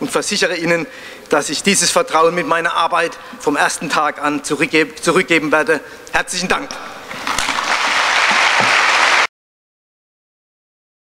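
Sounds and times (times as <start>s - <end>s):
audience applauding: 7.1s - 9.3s.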